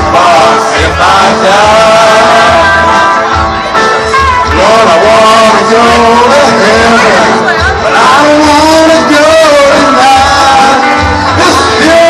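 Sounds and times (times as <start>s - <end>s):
country backing track: 0.0s - 12.0s
man singing karaoke: 0.0s - 12.0s.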